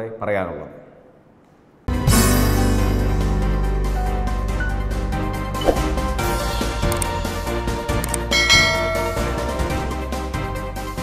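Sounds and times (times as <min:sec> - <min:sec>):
background music: 0:01.9 - 0:11.0
bell chime: 0:08.2 - 0:10.1.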